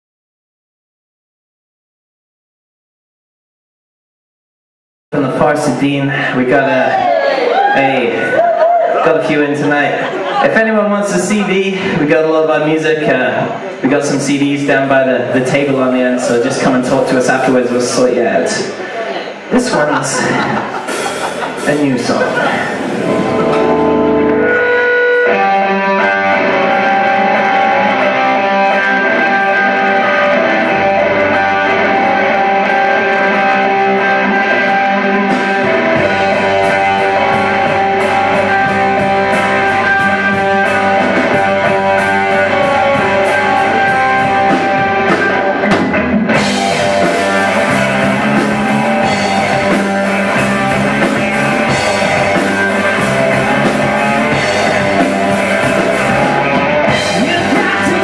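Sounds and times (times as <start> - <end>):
electric guitars: 5.2 - 58.0
drum kit: 19.7 - 58.0.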